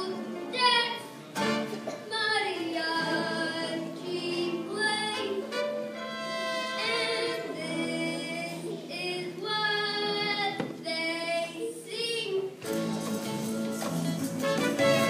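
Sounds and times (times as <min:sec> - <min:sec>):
musical accompaniment: 0:00.0 - 0:08.9, 0:12.6 - 0:15.0
child singing into microphone: 0:00.0 - 0:12.7.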